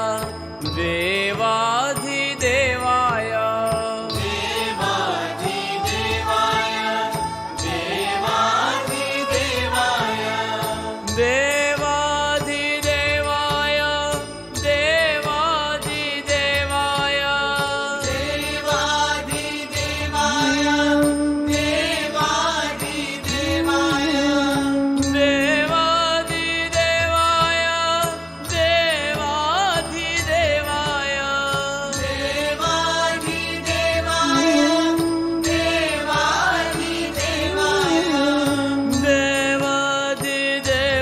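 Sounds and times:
devotional chant music with drone: 0:00.0 - 0:41.0.

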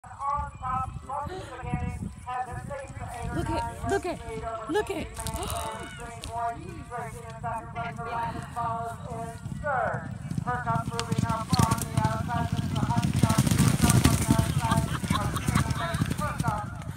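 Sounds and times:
horses galloping on turf: 0:00.1 - 0:16.9
people talking indistinctly: 0:03.3 - 0:07.2.

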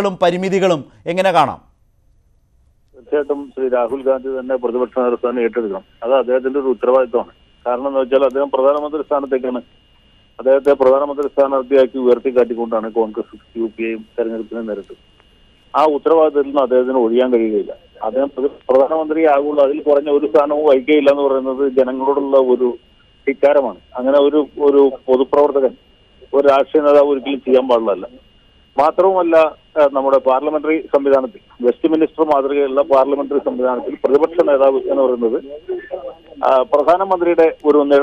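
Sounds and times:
man speaking over telephone: 0:00.0 - 0:01.6, 0:03.0 - 0:09.6, 0:10.4 - 0:15.0, 0:15.8 - 0:28.2, 0:28.8 - 0:38.0.

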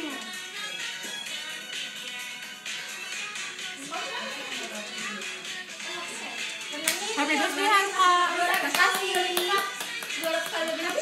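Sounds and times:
sharp hand claps: 0:06.8 - 0:07.1, 0:08.4 - 0:11.0.

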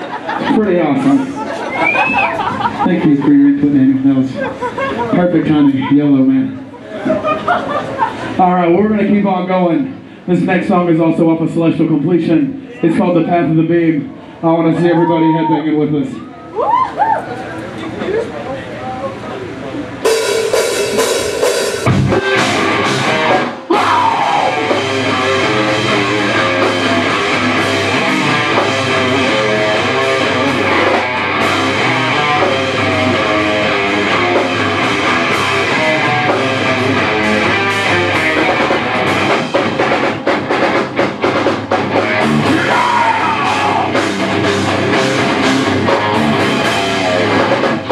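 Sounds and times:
distorted electric guitars: 0:19.9 - 0:47.9
drum kit: 0:20.0 - 0:47.9.

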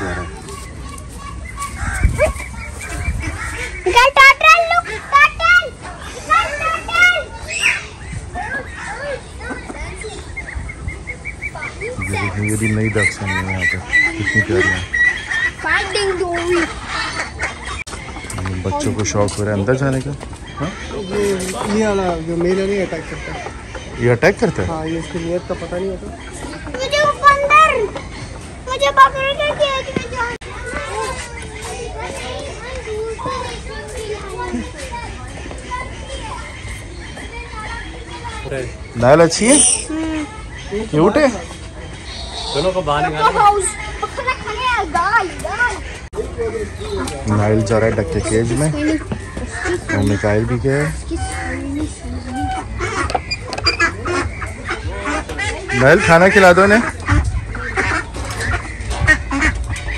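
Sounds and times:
children chattering and calling out: 0:00.0 - 0:59.9
steady low rumble: 0:56.7 - 0:59.9.

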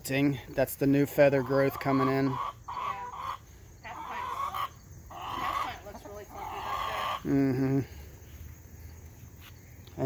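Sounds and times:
hens clucking softly: 0:01.2 - 0:07.6.

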